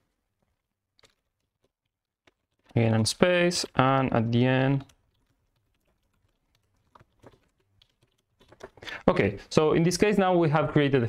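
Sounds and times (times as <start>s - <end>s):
computer keyboard typing: 1.0s - 9.1s.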